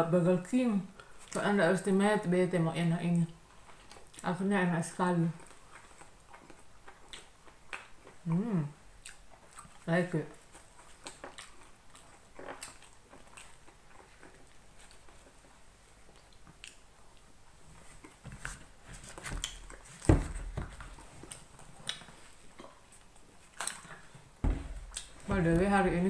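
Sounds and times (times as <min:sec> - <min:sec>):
person chewing: 0:03.5 - 0:04.2, 0:05.4 - 0:20.1, 0:20.7 - 0:25.3
sharp thump: 0:24.4 - 0:25.5.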